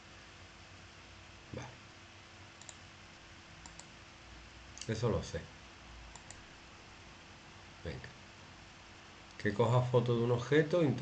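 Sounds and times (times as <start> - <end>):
low steady hum: 0.0 - 11.0
faint computer mouse clicks: 2.6 - 2.8, 3.6 - 3.9, 6.1 - 6.4.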